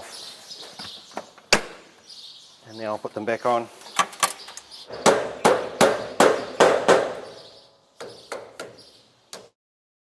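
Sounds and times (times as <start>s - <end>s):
hammer striking metal: 5.0s - 7.4s.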